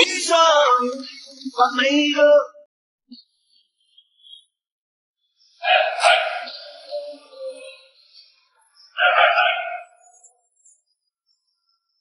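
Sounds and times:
loud voice-like pitched sound: 5.6s - 7.7s, 9.0s - 9.9s.

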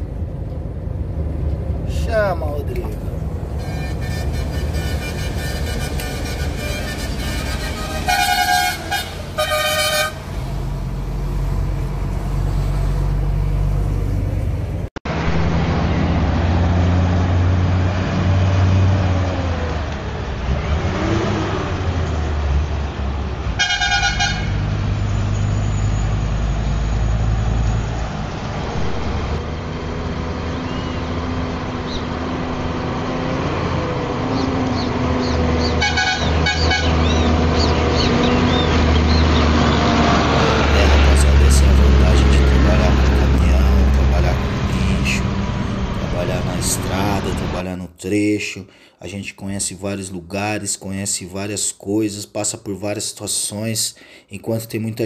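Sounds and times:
diesel engine droning: 0.0s - 47.6s
truck horn blasts: 3.6s - 10.4s, 23.6s - 24.7s, 35.6s - 37.5s.

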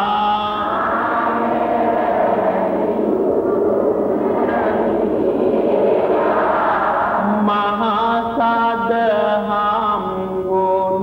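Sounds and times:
steady low drone: 0.0s - 10.0s
person chanting long notes: 0.0s - 11.0s.

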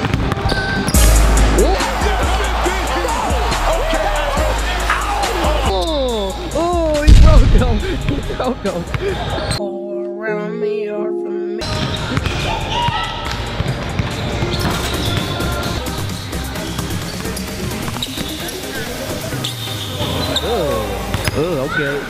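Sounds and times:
background music: 0.0s - 22.0s.

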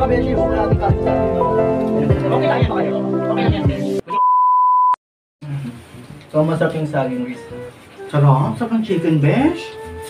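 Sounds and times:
background music: 0.0s - 4.1s, 6.7s - 10.0s
high test-tone beep: 4.2s - 5.0s.

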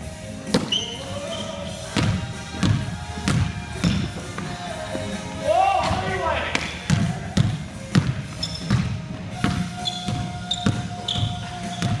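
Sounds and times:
sneaker squeaks: 0.5s - 4.6s, 6.6s - 12.0s
basketball bouncing on wooden floor: 2.0s - 4.5s, 6.6s - 12.0s.

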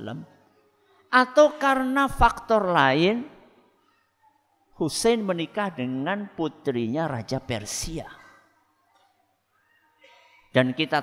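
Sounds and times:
man speaking: 0.0s - 0.3s, 4.8s - 8.4s, 10.5s - 11.0s.

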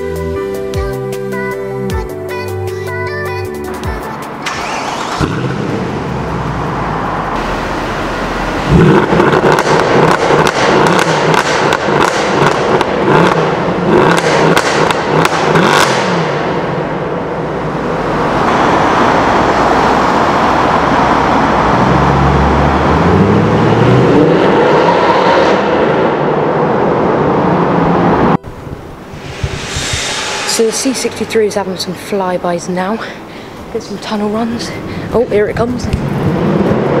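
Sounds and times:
car engine revving: 4.4s - 37.0s
exhaust crackles and pops: 8.6s - 16.6s.

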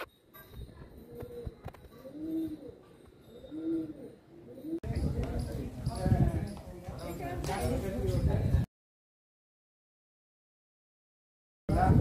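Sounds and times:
people chattering: 0.0s - 8.7s
pigeons cooing: 0.9s - 5.1s.

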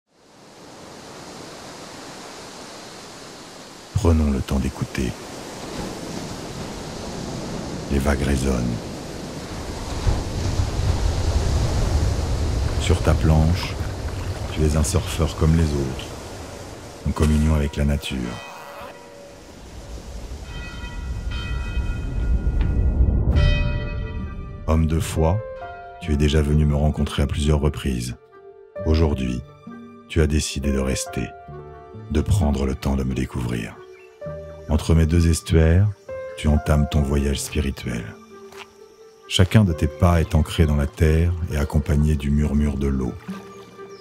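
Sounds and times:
ocean waves washing: 0.1s - 27.0s
sustained high ringing tones: 17.1s - 24.7s
low rumble: 19.7s - 25.5s.

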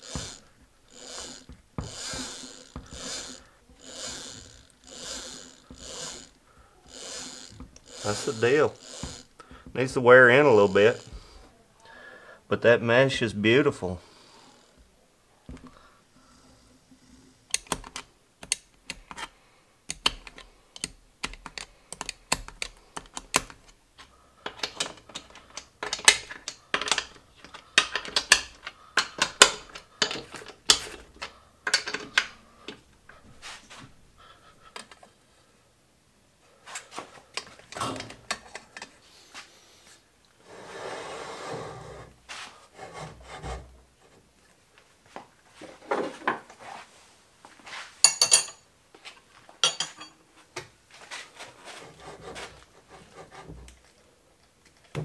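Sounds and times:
metallic clicks of hand tools: 17.5s - 19.3s, 19.9s - 32.8s
short scraping rub: 33.3s - 33.9s, 39.1s - 43.7s.

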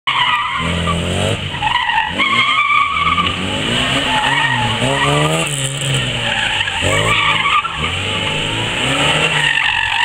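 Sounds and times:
car tyres squealing on concrete: 0.1s - 10.0s
car engine revving: 0.2s - 10.0s.

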